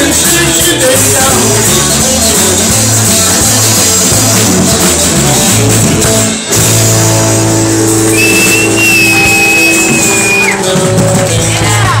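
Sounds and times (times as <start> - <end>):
live rock band playing: 0.0 - 12.0
high steady whistle: 8.1 - 10.6.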